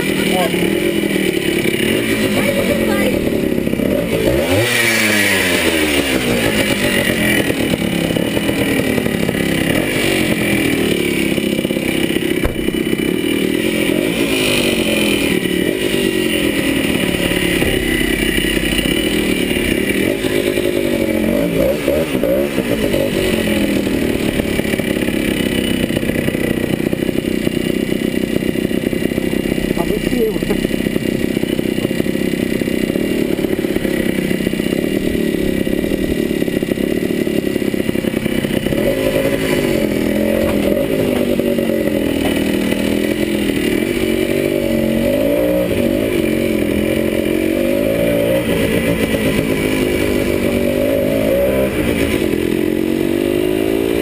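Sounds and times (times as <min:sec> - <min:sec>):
two-stroke motorcycle engine revving: 0:00.0 - 0:54.0.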